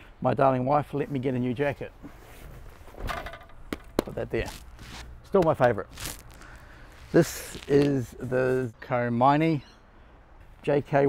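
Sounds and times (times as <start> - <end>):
leather jacket rustling: 4.4 - 8.7.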